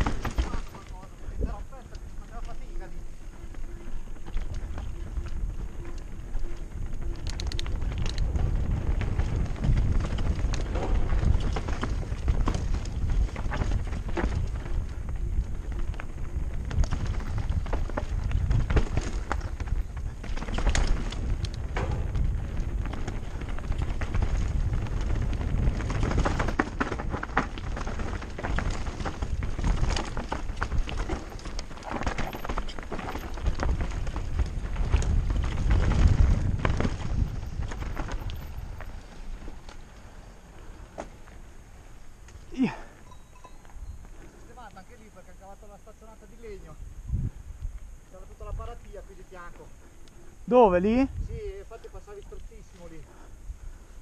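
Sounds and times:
bike clattering over bumps: 0.0 - 2.0, 3.4 - 43.8
tyres crunching over stones: 0.0 - 45.1.

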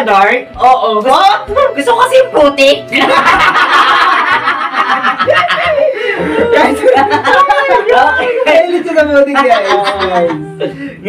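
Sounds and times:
men laughing loudly: 2.9 - 10.9.

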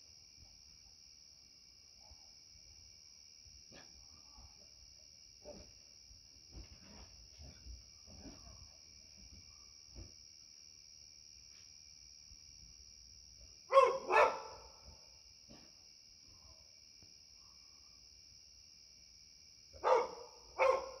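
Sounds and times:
dog barking: 13.7 - 14.8, 19.8 - 21.0.

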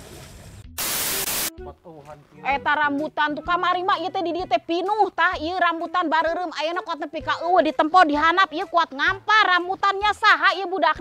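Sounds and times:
static hiss burst: 0.8 - 1.5.

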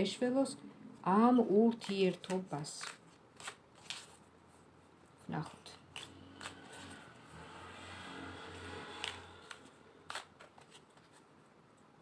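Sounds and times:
cards rustling: 1.7 - 4.3, 5.4 - 7.0, 8.9 - 11.3.

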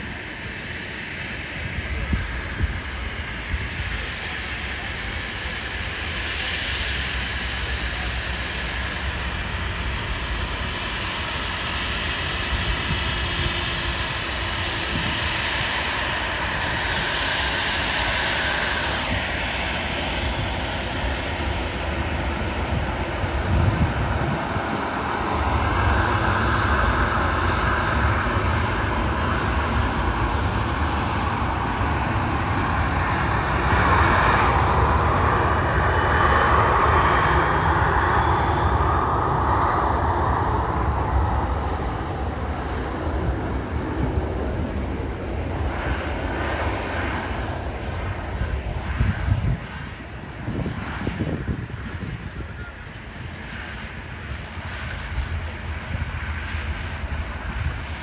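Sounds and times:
jet engines running: 0.0 - 58.0.

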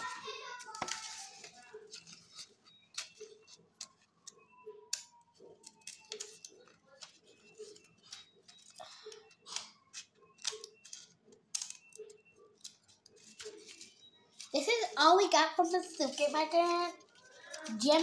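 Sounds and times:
objects being handled: 0.0 - 18.0.

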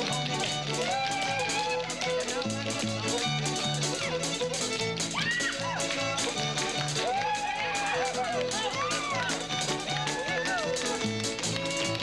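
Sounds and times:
country square-dance band music: 0.0 - 12.0.

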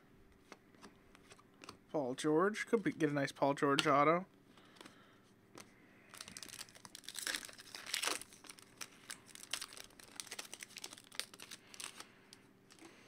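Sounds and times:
plastic crinkling: 6.1 - 12.9.

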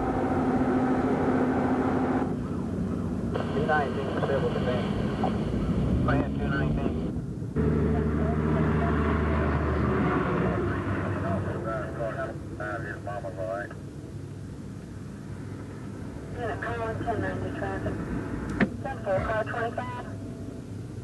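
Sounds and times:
steady engine-like hum: 0.0 - 21.0.

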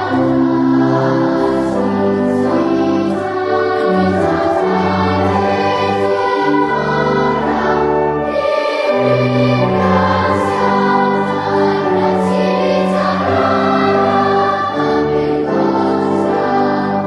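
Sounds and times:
choir singing a hymn: 0.0 - 17.0.

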